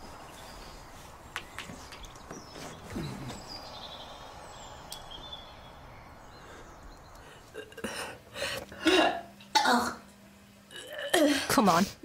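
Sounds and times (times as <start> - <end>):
woman retching and gagging: 10.7 - 11.5.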